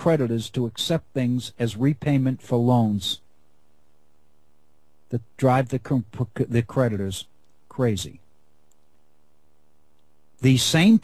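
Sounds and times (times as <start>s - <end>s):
man speaking: 0.0s - 3.2s, 5.1s - 8.2s, 10.4s - 11.0s
faint steady hum: 0.0s - 11.0s.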